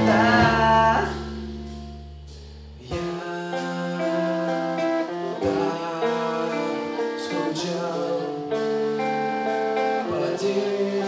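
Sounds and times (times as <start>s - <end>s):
bass guitar: 0.0s - 11.0s
electric guitars playing chords: 0.0s - 11.0s.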